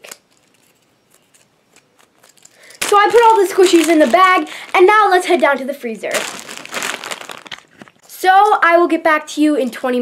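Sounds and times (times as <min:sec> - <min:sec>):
plastic bag crinkling: 0:02.0 - 0:08.0.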